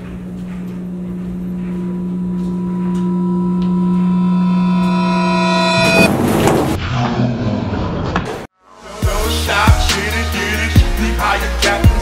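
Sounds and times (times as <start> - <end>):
low droning note: 1.4 - 6.3.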